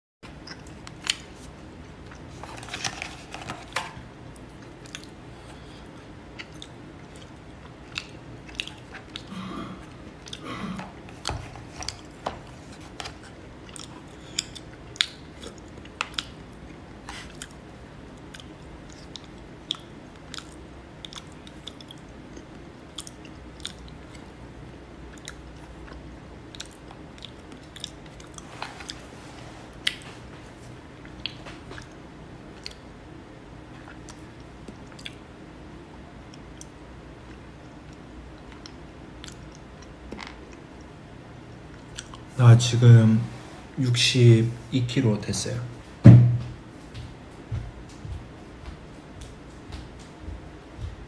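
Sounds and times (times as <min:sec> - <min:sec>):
steady low hum: 0:00.2 - 0:51.0
person chewing: 0:00.3 - 0:24.4, 0:25.0 - 0:32.0, 0:33.7 - 0:35.2, 0:36.3 - 0:40.9, 0:41.7 - 0:42.3.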